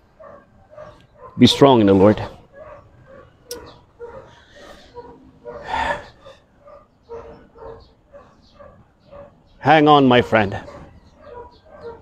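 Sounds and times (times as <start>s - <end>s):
dog barking: 0.2s - 9.5s, 10.1s - 12.0s.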